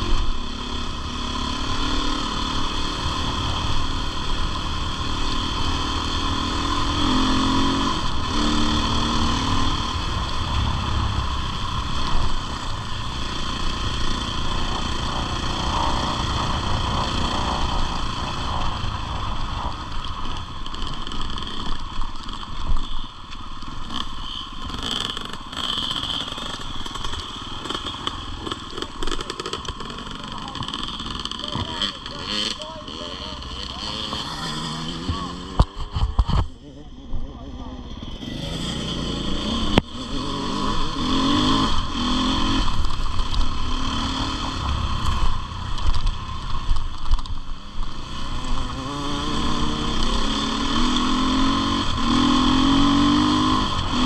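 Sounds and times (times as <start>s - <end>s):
motorcycle engine revving: 0.0s - 54.0s
motorcycle clattering over rough ground: 19.9s - 33.1s.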